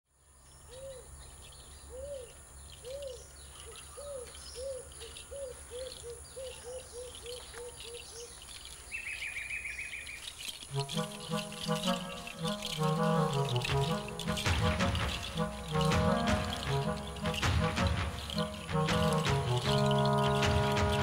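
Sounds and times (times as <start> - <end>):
bird hooting: 1.9 - 3.2
high insect buzz: 3.0 - 21.0
high-pitched trill: 10.7 - 21.0.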